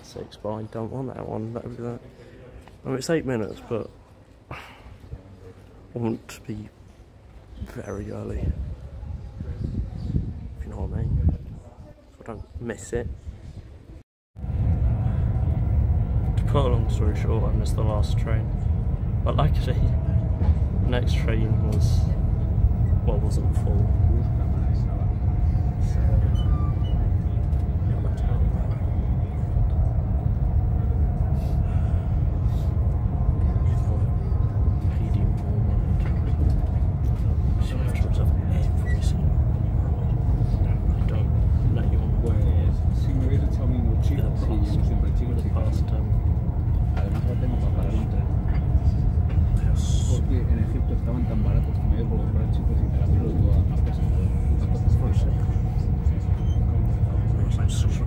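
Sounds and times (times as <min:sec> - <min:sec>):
faint voices: 0:13.6 - 0:58.0
train rumble inside carriage: 0:14.4 - 0:58.0.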